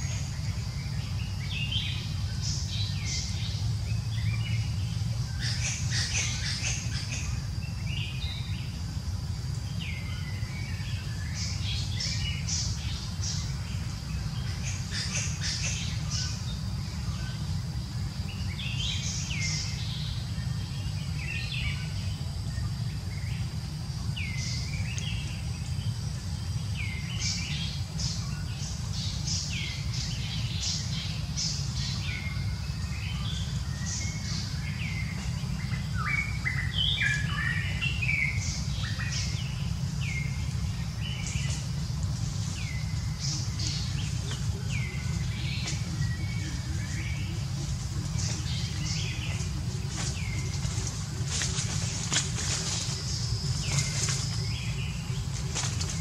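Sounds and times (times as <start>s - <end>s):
birds chirping and calling: 0.0s - 56.0s
steady low rumble: 0.0s - 56.0s.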